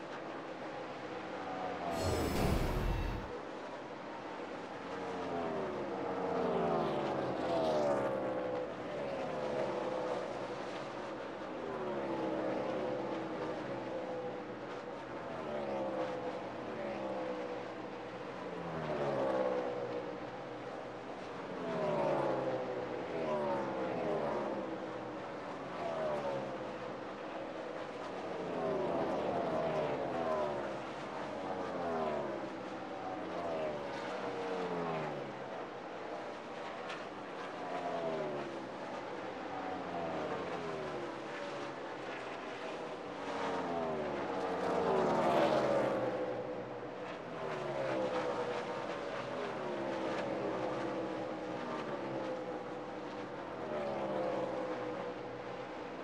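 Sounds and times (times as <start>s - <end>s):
race cars passing by: 1.9s - 3.4s, 43.0s - 52.4s.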